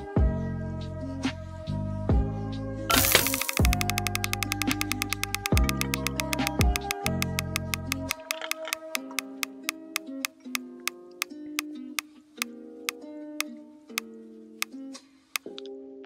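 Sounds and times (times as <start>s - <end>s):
roulette spinner ticking: 3.2s - 11.0s.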